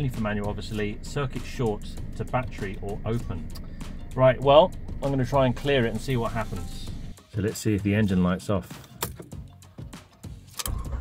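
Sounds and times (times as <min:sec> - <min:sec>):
car engine rumble: 0:00.0 - 0:07.1.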